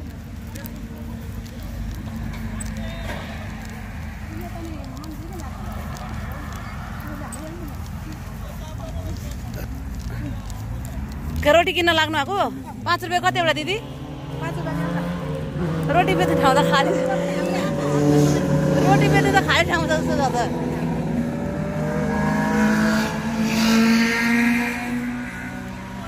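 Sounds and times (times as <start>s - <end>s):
low rumble: 0.0s - 11.6s
people talking: 0.0s - 13.8s, 14.4s - 15.2s, 15.8s - 20.9s
indistinct group chatter: 0.0s - 26.0s
low drone shifting pitch: 1.4s - 9.0s, 10.2s - 26.0s.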